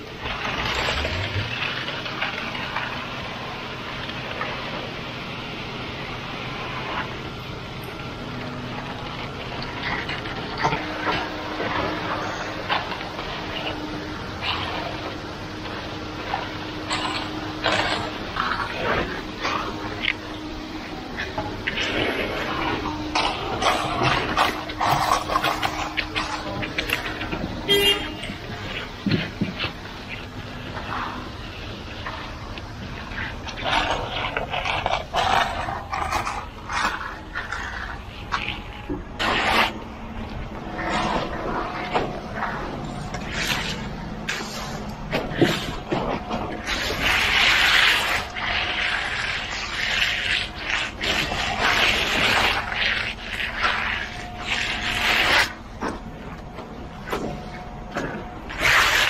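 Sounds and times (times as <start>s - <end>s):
pump engine running: 0.0s - 59.0s
trowel scraping wet concrete: 0.2s - 4.9s, 8.2s - 59.0s.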